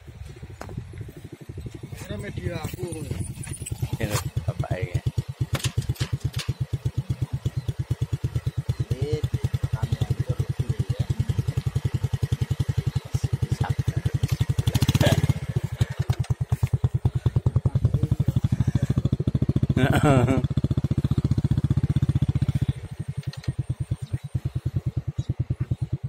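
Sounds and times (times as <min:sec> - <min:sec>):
small engine chugging: 0:00.0 - 0:26.0.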